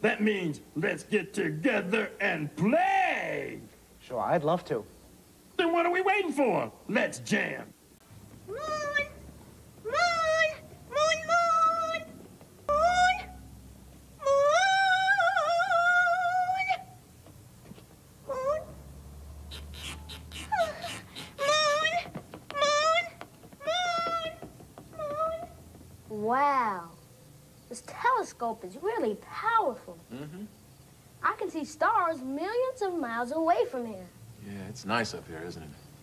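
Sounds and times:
cat meowing: 8.5 - 9.2, 19.5 - 25.6.

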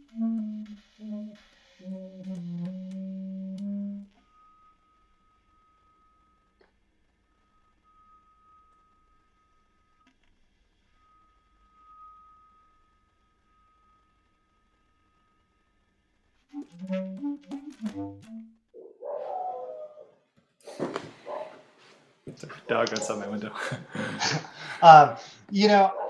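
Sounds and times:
basset horn playing: 0.0 - 6.3, 16.5 - 18.6.

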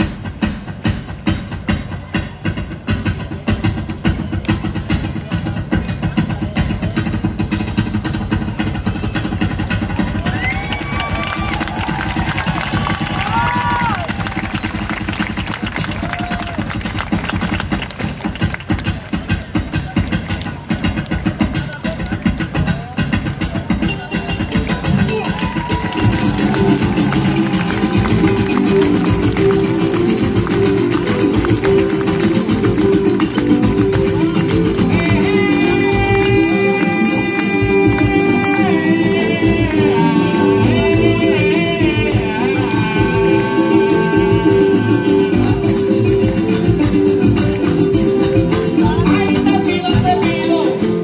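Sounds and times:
keyboard: 0.0 - 51.0
folk band playing: 21.1 - 51.0.

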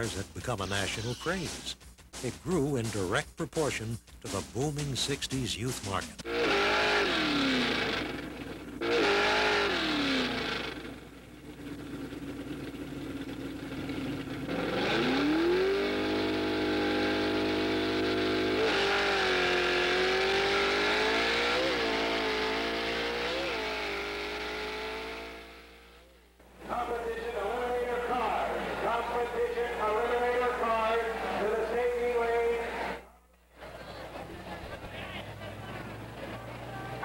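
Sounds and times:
racing car engine revving: 5.8 - 33.0, 33.6 - 37.0.

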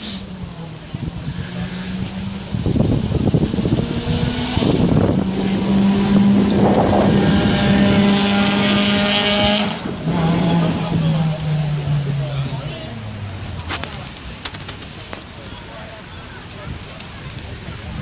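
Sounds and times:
rally car speeding past: 1.1 - 13.3.

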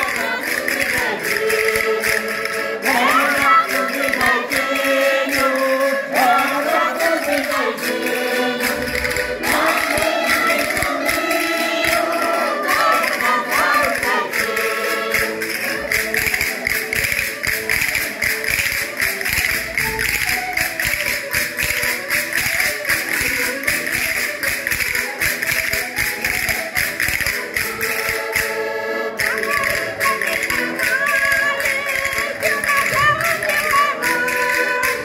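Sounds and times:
group singing along: 0.0 - 15.7
button accordion playing: 0.0 - 35.0
hand percussion clicking: 0.0 - 35.0.

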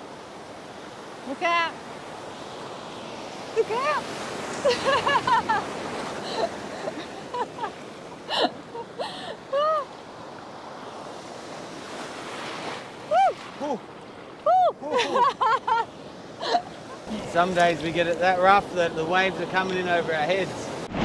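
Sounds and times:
surf waves rushing: 0.0 - 21.0
people laughing and crying out: 8.3 - 9.9.

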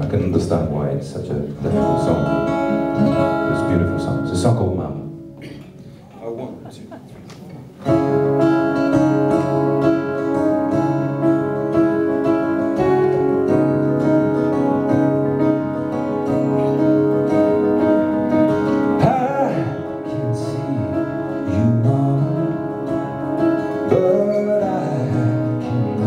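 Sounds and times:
acoustic guitar strumming: 1.4 - 6.0, 7.8 - 26.0.

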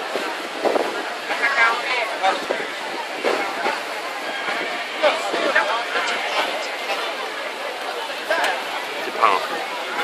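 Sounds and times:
boat running noise: 0.0 - 10.0
faint voices: 0.0 - 10.0.

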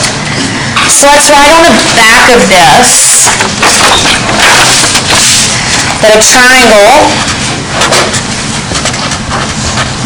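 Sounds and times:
steady noisy hiss: 0.0 - 10.0.

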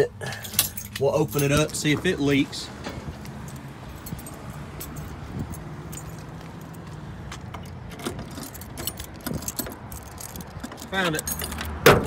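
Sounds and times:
car keys jangling: 0.2 - 12.0.

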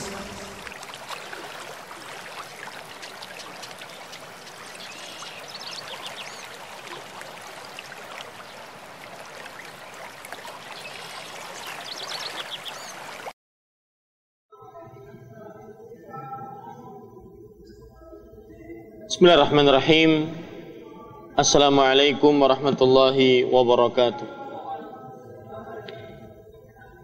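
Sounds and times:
running water rushing: 0.0 - 13.3.

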